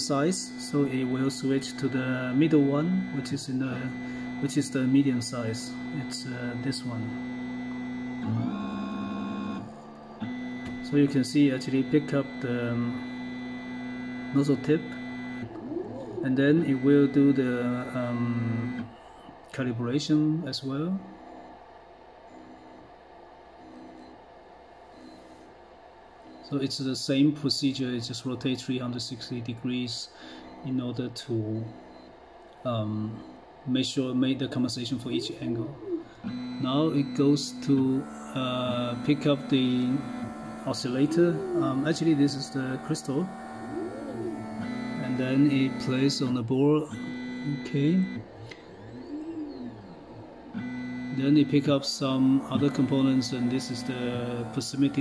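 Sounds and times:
stepper motor whine: 0.0s - 23.0s, 29.7s - 55.0s
steady tone: 30.6s - 55.0s.

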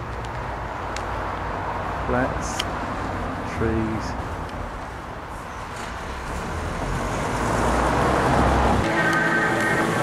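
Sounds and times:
road traffic rumble: 0.0s - 10.0s
music with held notes: 8.8s - 10.0s.

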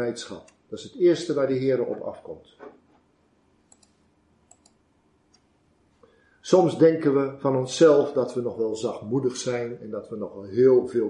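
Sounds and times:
faint computer clicks: 3.7s - 5.5s.

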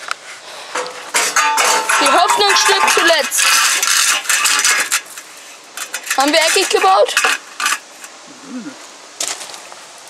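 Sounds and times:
metallic ringing: 0.8s - 3.3s
metal strip scraping a wall: 0.8s - 8.1s.

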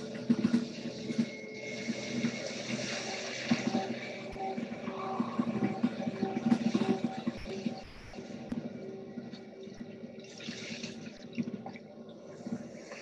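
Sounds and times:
soft ambient meditation music: 0.0s - 13.0s.

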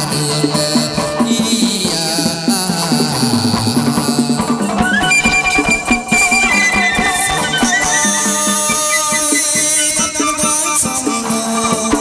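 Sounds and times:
percussion: 0.0s - 12.0s
plucked string notes: 4.3s - 9.3s
sustained tones: 4.6s - 10.6s.

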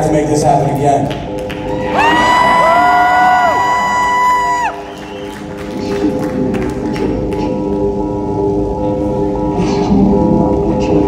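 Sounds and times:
synthesizer drone: 1.2s - 11.0s
crowd cheering: 1.6s - 6.7s.

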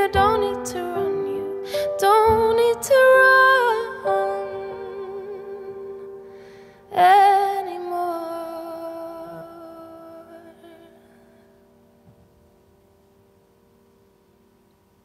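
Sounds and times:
woman singing: 0.0s - 6.2s, 6.9s - 11.5s
grand piano: 0.0s - 15.0s.

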